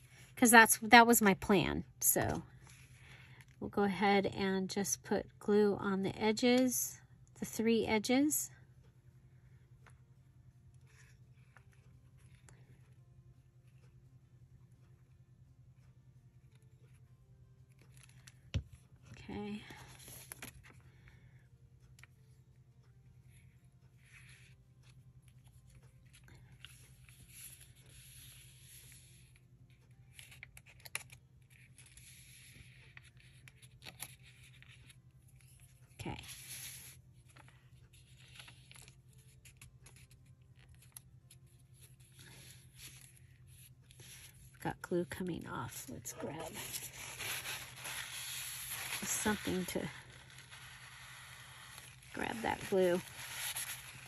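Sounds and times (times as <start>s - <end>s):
faint room hum: 0.0s - 54.0s
paper rustling and scraping: 46.2s - 54.0s.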